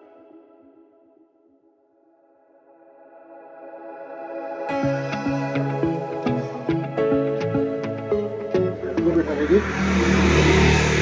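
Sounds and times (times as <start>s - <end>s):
voices: 8.5s - 11.0s
vehicle engine passing by: 9.1s - 11.0s.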